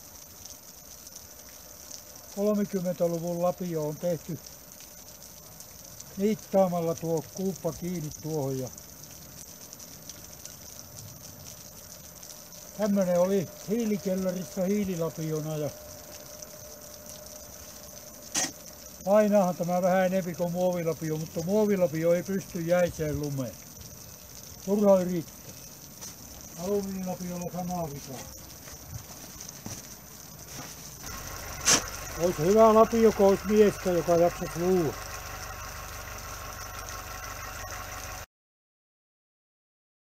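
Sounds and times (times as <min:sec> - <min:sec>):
faint background hiss: 0:00.0 - 0:38.1
engine idling hum: 0:12.1 - 0:20.4, 0:30.9 - 0:38.3
shovel crunching into snow: 0:30.5 - 0:32.8.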